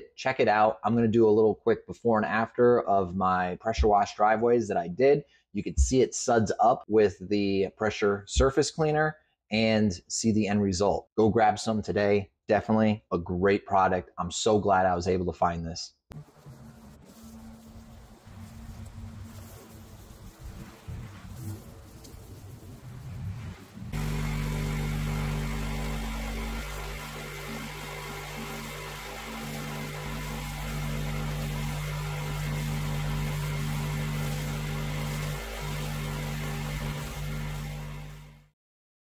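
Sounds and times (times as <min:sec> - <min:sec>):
pressure washer machine hum: 0:16.1 - 0:22.7, 0:23.6 - 0:38.5
water jetting onto concrete: 0:16.2 - 0:38.3.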